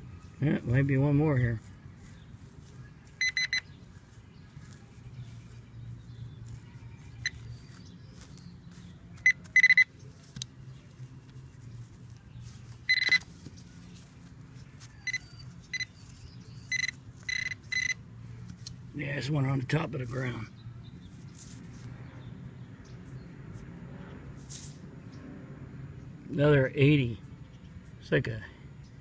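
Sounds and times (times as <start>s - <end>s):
metal detector pinpointer beeping: 3.2s - 3.7s, 9.2s - 9.9s, 12.9s - 13.3s, 15.0s - 18.0s.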